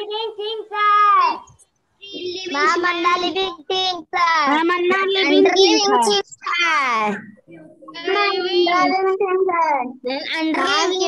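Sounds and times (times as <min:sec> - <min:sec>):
child chanting: 0:07.9 - 0:11.0.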